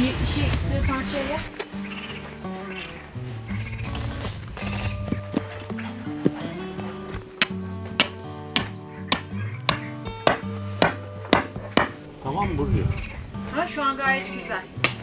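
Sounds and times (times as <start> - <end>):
background music: 0.0 - 15.0
hammer striking tent peg: 7.4 - 12.0.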